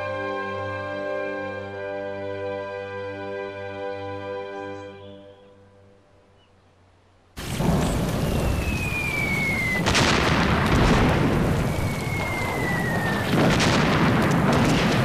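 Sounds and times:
music: 0.0 - 6.4
artillery shell whistling down: 7.4 - 15.0
explosion: 7.4 - 15.0
heavy rain: 7.4 - 15.0.

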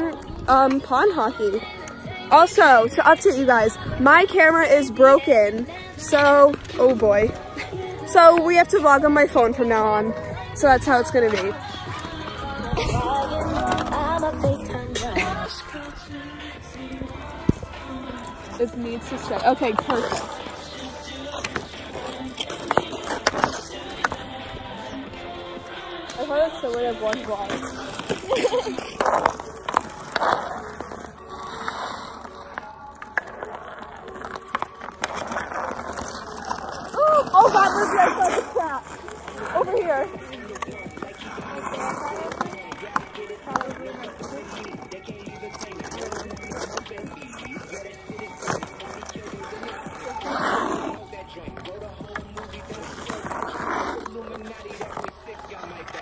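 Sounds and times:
skate blades scraping on ice: 0.0 - 56.0
hockey sticks clacking on puck: 19.2 - 24.2, 26.1 - 50.4.

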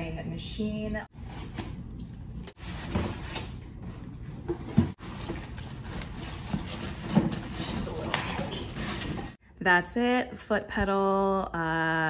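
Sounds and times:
packing material rustling: 5.0 - 9.4.

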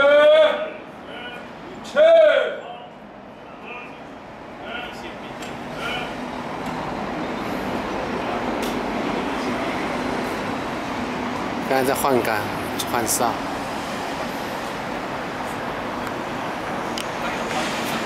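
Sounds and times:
person shouting commands: 0.0 - 2.9
city traffic noise: 0.0 - 18.0.

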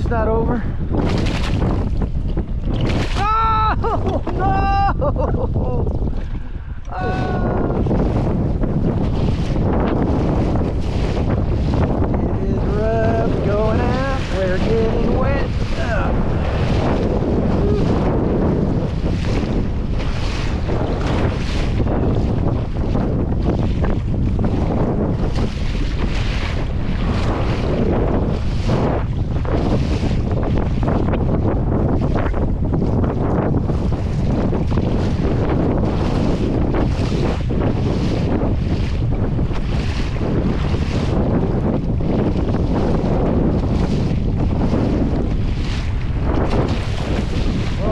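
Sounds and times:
waves slapping kayak hull: 0.0 - 47.9
wind buffeting microphone: 0.0 - 47.9.

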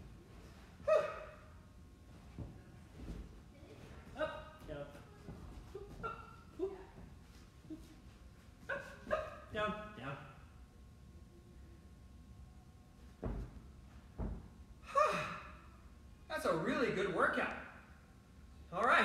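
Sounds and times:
hands knocking on gym mat: 13.2 - 13.6.

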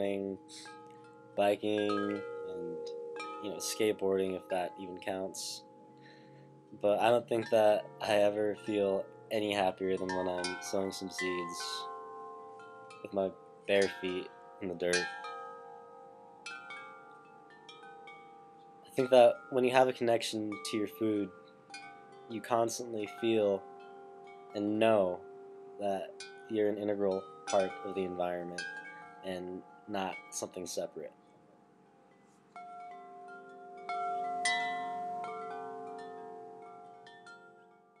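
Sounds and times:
faint metallic chimes ringing: 0.0 - 38.0.

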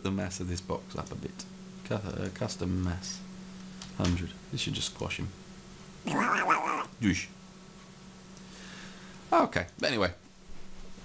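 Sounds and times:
man's vocal exclamation: 6.1 - 7.0.

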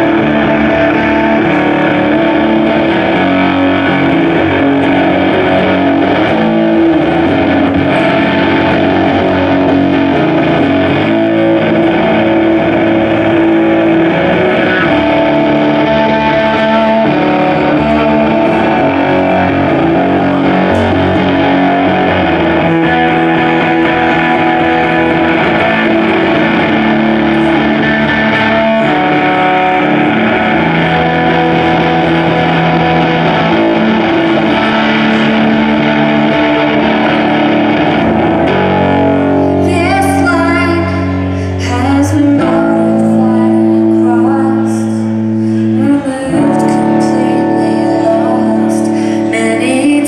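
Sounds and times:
distorted electric guitar: 0.0 - 50.0.

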